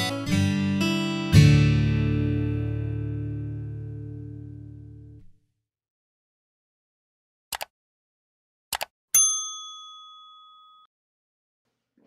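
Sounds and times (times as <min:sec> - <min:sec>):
bright bell ding: 0:09.2 - 0:10.9.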